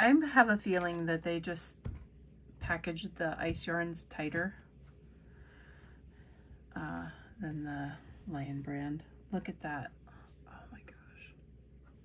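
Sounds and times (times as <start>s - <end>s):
woman whispering: 10.0s - 11.4s.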